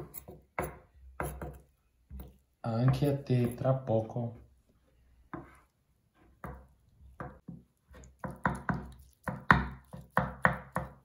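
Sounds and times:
knife chopping on wooden board: 0.0s - 3.6s, 6.4s - 11.0s.

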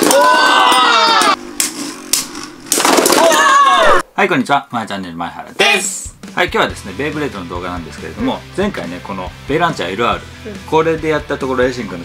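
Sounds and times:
spinning tops whirring and knocking: 0.0s - 3.5s.

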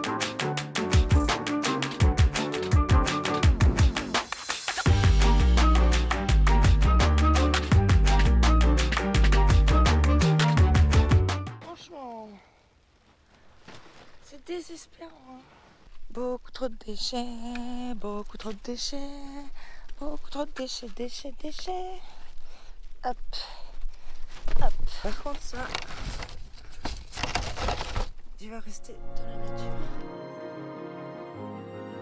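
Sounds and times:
plastic bag rustling and crinkling: 12.9s - 14.6s, 23.7s - 28.3s
plastic litter shifting: 25.4s - 28.2s.

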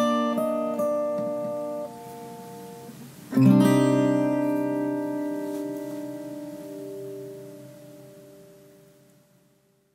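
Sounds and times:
acoustic guitar chord ringing: 0.0s - 9.9s.

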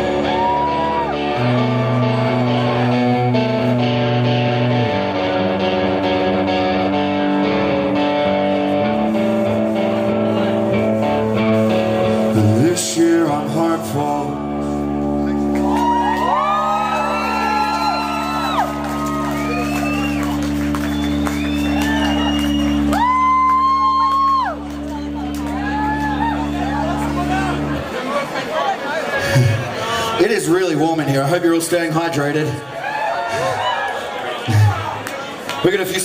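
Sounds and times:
ringing guitar drone: 0.0s - 12.7s, 16.4s - 27.9s
live rock band playing: 0.0s - 28.6s, 33.4s - 36.0s.

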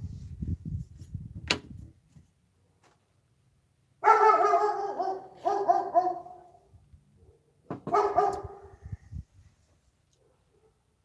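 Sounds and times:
dog barking: 4.0s - 6.6s, 7.2s - 8.8s, 10.2s - 10.9s.

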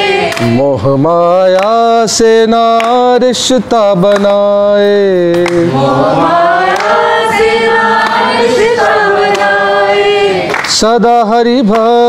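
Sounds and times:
group singing devotional song: 0.0s - 12.0s.

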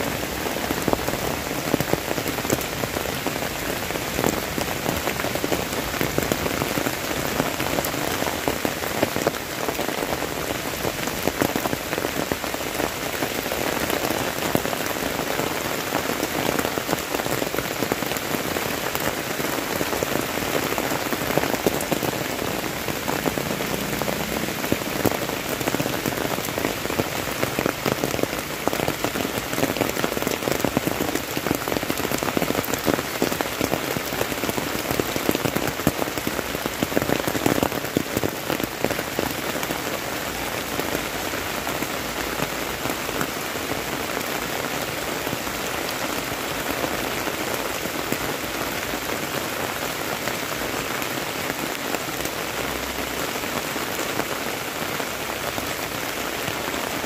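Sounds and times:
heavy rain on concrete and foliage: 0.0s - 57.0s.

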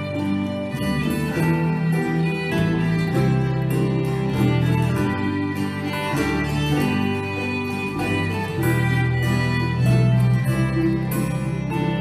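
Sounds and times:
fiddles playing tune: 0.0s - 12.0s
strummed acoustic guitars: 0.0s - 12.0s.

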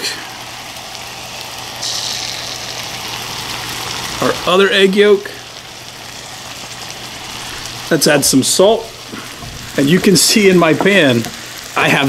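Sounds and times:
eggs sizzling in a pan: 0.0s - 12.0s.

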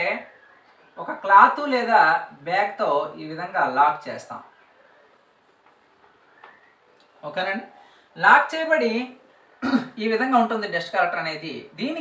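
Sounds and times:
man speaking: 1.0s - 4.6s, 7.2s - 12.0s.

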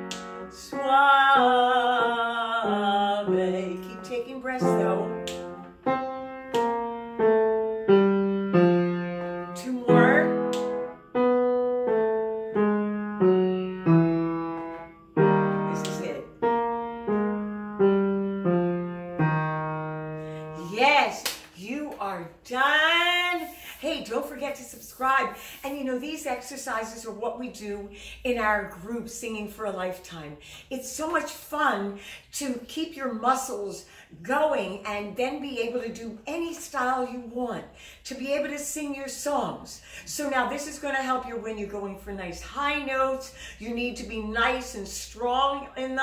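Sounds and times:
upright piano playing: 0.0s - 21.5s.

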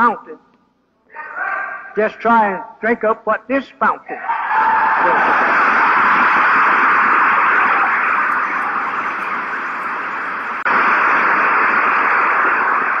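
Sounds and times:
static hiss: 5.2s - 13.0s.

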